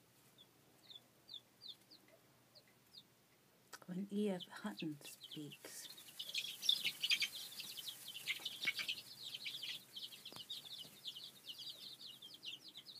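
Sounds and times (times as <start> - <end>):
chicks peeping: 0.0 - 12.9.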